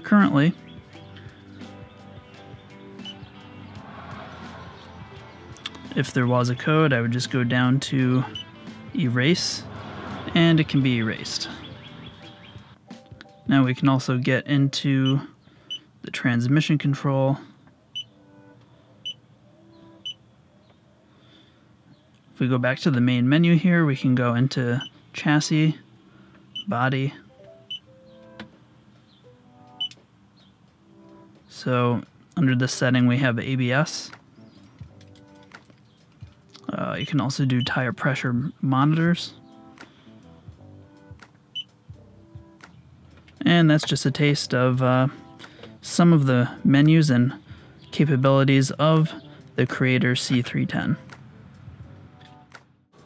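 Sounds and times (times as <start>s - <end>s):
quiet background music: 0.0s - 53.0s.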